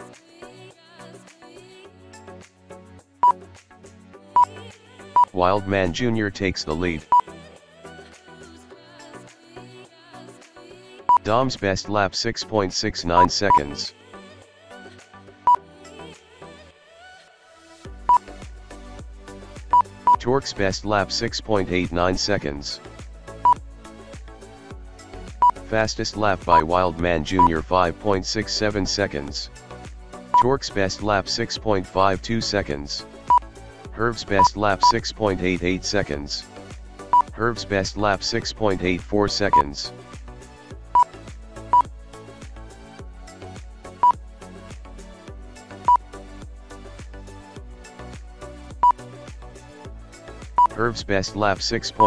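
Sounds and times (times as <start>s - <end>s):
background music with steady beat: 0.0s - 52.0s
short electronic beeps: 13.2s - 13.8s.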